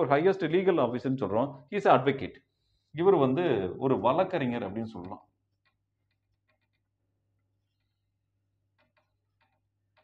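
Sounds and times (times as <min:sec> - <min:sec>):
marker writing on whiteboard: 0:04.9 - 0:10.0.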